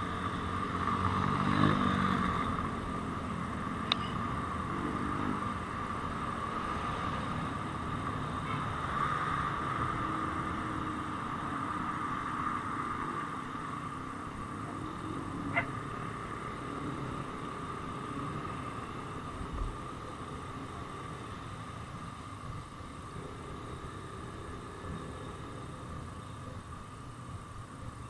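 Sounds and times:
motorcycle engine whine: 0.0 - 28.0
road and wind rumble: 0.0 - 28.0.

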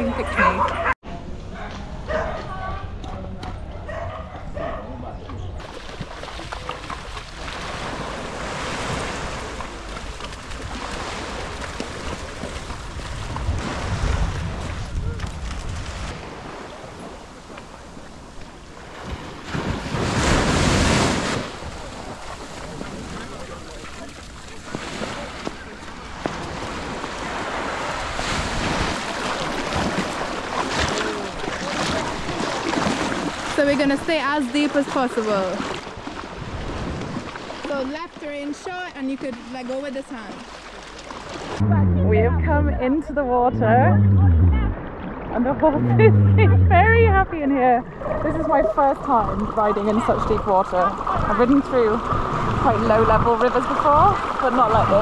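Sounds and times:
sea surf washing on beach: 5.6 - 41.7, 44.0 - 55.0
wind buffeting microphone: 12.0 - 18.7, 41.5 - 55.0.

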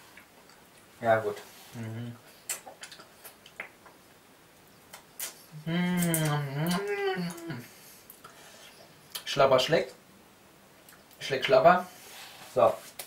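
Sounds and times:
man humming or groaning: 1.8 - 2.2, 5.5 - 7.7.

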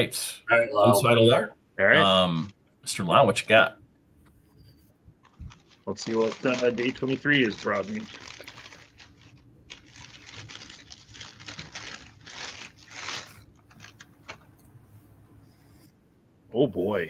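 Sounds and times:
paper wrapping crumpling: 5.2 - 14.6.

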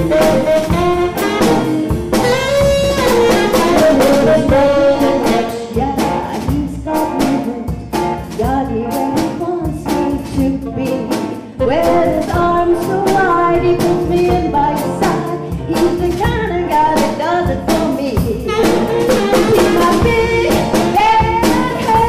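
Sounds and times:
saxophone: 0.0 - 5.9, 11.7 - 22.0
electric guitar: 0.0 - 9.6
drum kit beat: 0.0 - 22.0
woman singing: 3.1 - 22.0.

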